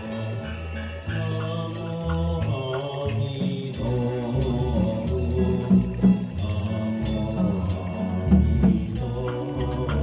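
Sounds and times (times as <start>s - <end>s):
struck percussion beat: 0.0s - 10.0s
voices chanting: 0.0s - 10.0s.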